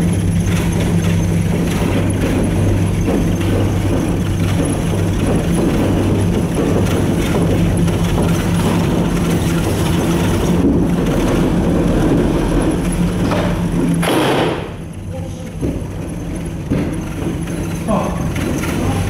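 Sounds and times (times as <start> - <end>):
gondola cabin rumbling hum: 0.0 - 19.0.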